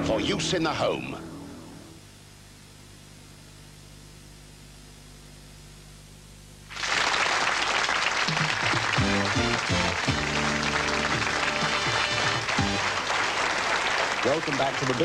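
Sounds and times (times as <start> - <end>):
studio audience applause: 6.7 - 15.0
game show music: 8.3 - 13.3.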